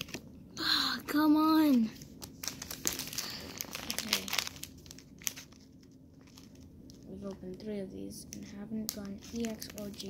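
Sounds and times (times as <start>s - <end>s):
foil wrapper crinkling and tearing: 0.0s - 0.2s, 2.2s - 7.6s, 8.3s - 10.0s.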